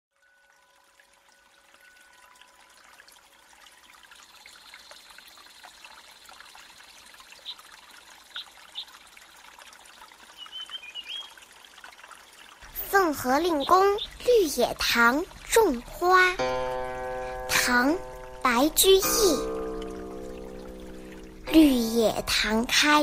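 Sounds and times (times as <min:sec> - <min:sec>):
faint trickling stream: 0:00.1 - 0:23.0.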